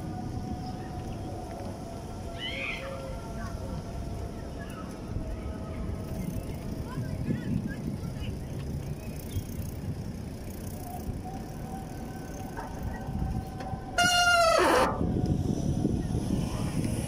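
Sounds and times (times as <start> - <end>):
bicycle rolling on paving: 0.0 - 17.0
bicycle brake squeal: 14.0 - 15.0.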